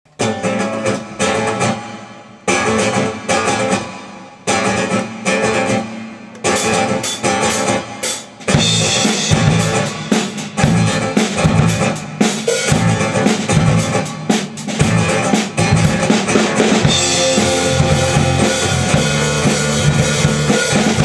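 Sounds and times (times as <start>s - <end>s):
band groove with drum kit: 0.1s - 21.0s
guitar and bass chords: 0.1s - 21.0s.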